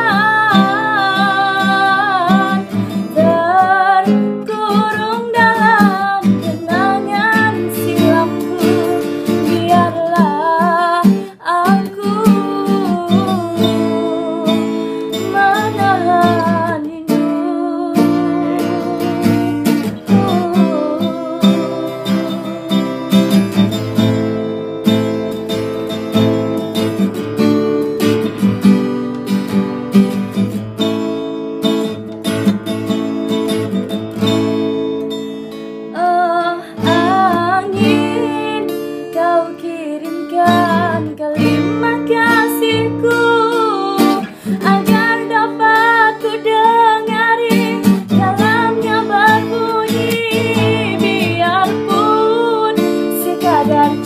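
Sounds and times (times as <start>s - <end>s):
woman singing: 0.0s - 24.2s, 35.9s - 54.0s
strummed acoustic guitar: 0.0s - 54.0s.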